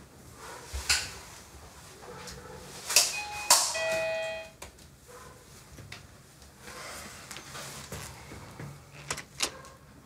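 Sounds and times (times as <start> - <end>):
doorbell button click: 3.1 - 4.5.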